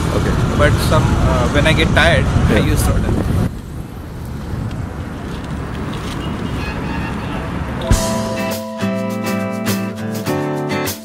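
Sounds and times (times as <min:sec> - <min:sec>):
roadside traffic: 0:00.0 - 0:11.0
wind on microphone: 0:01.0 - 0:06.7
sharp thump: 0:07.8 - 0:08.4.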